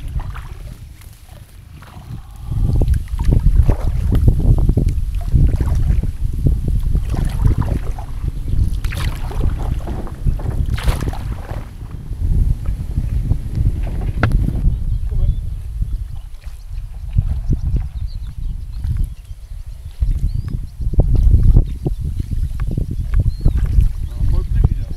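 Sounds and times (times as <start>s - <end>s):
kayak paddle splashing water: 0.0s - 14.8s, 15.9s - 19.3s
wind buffeting microphone: 0.0s - 24.9s.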